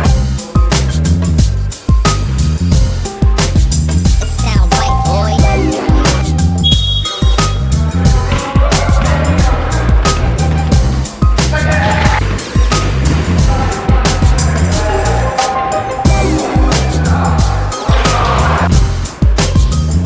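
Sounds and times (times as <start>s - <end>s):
music with heavy bass beat: 0.0s - 11.7s, 16.1s - 20.0s.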